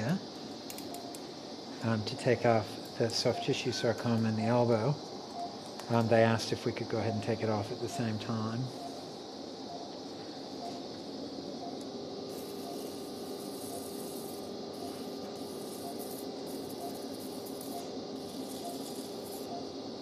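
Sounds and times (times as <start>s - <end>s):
high hiss: 0.0s - 19.6s
operating room background noise: 0.0s - 20.0s
patient monitor beeps: 3.0s - 10.9s, 11.5s - 11.9s, 12.5s - 19.8s.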